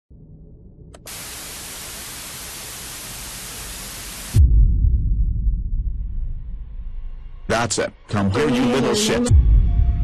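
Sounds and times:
television static hiss: 1.0 - 4.4.

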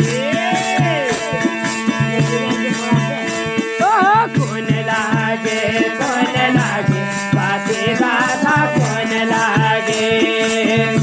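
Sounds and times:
hand drum beating: 0.0 - 11.0
jingling rhythm: 0.0 - 11.0
steady held tones: 3.2 - 6.2
wavering melodic phrase: 3.8 - 4.6.

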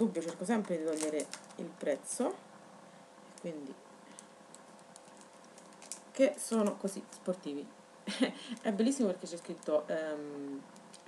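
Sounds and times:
paper notes clicking and crinkling: 0.2 - 1.7, 4.1 - 6.9.

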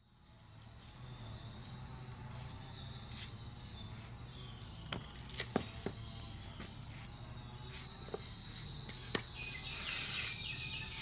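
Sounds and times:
high insect drone: 0.0 - 11.0.

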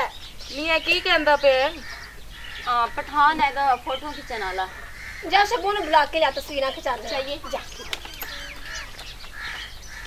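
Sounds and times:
people talking: 0.0 - 1.8, 2.7 - 8.6
short bird calls: 7.4 - 10.0.

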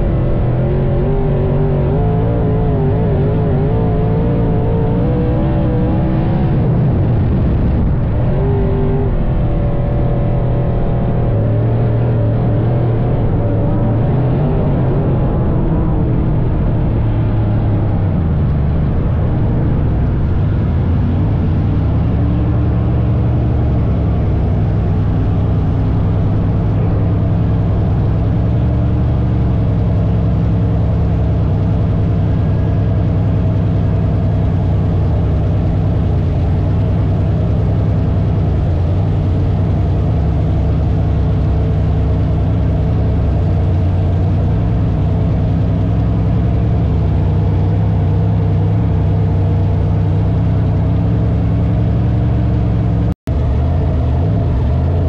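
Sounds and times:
race car engine running loud: 0.0 - 55.0.

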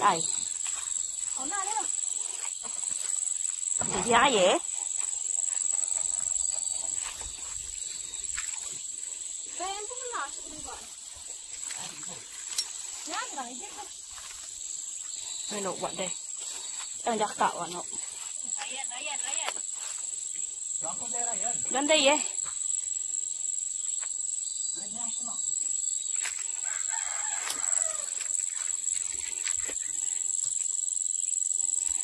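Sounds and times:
high-pitched insect drone: 0.0 - 32.0
people talking: 1.4 - 1.9, 4.0 - 4.6, 9.6 - 10.8, 17.1 - 17.8, 18.5 - 19.6.

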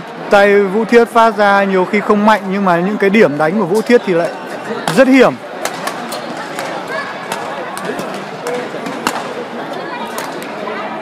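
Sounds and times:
hall chatter: 0.0 - 11.0
racket striking shuttlecock: 5.6 - 9.3.

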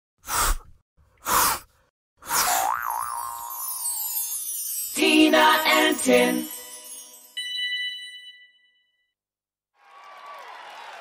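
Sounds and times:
springy cartoon boing: 2.5 - 3.7.

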